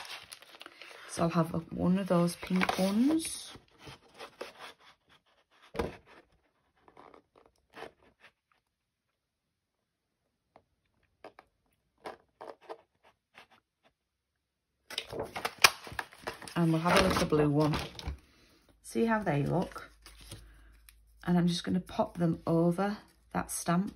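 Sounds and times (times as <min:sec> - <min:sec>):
paper rustling and sliding: 0:14.9 - 0:18.1, 0:19.4 - 0:20.5.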